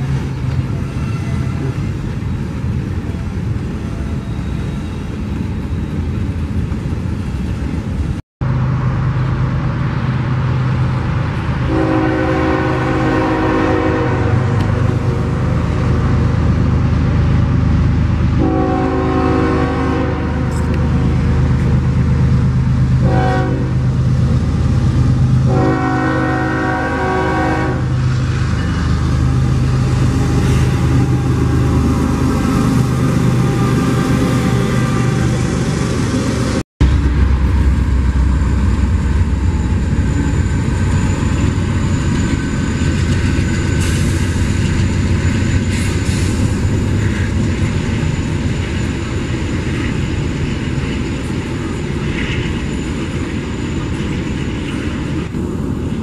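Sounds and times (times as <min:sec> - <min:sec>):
diesel locomotives rumbling past: 0:00.0 - 0:56.0
train horn blasts: 0:11.7 - 0:14.8, 0:18.4 - 0:20.8, 0:23.0 - 0:23.8, 0:25.4 - 0:35.4.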